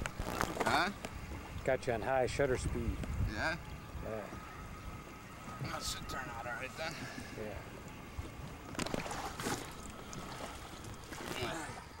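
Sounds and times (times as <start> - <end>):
water splashing against boat: 0.0 - 12.0.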